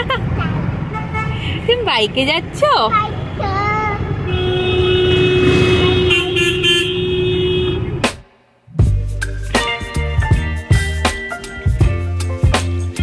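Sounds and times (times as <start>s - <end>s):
vehicle engines running: 0.0s - 8.2s
horn short toots: 4.3s - 8.2s.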